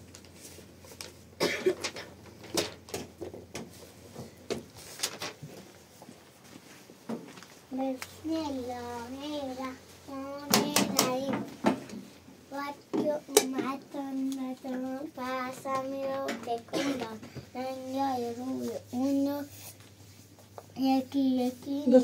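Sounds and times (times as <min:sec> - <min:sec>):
child speaking sing-song: 0:07.8 - 0:11.4, 0:12.5 - 0:19.5, 0:20.8 - 0:22.0.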